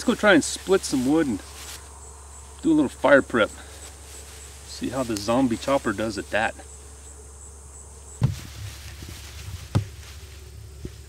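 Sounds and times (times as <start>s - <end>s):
insects buzzing and chirping: 0.0s - 11.0s
low hum: 0.0s - 11.0s
dull thumps: 8.2s - 10.1s.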